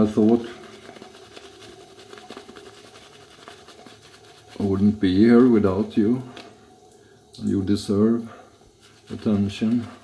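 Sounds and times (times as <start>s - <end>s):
shaving brush scratching stubble: 0.0s - 5.6s, 8.8s - 10.0s
faint steady hum: 0.0s - 10.0s.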